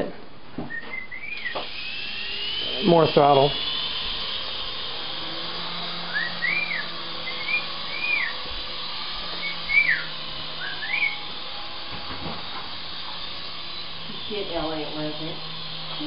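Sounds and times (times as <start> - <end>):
short whistled notes: 0.7 - 1.5, 9.4 - 11.2
toy helicopter motor and rotors: 0.9 - 16.0.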